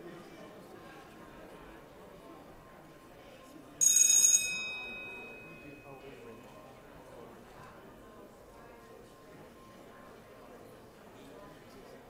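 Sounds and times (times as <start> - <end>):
low murmur of voices: 0.0 - 12.0
bell ding: 3.8 - 6.0.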